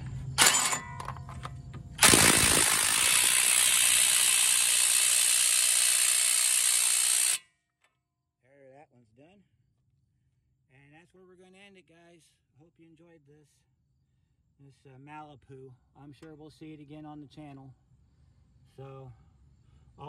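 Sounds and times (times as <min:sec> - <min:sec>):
power wrench running: 0:00.4 - 0:01.2, 0:01.9 - 0:07.4.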